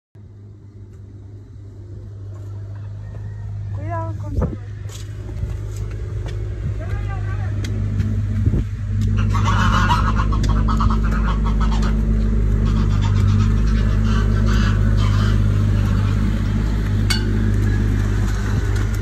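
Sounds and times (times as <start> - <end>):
steady low hum: 0.2 - 19.0
horse hooves striking ground: 0.6 - 19.0.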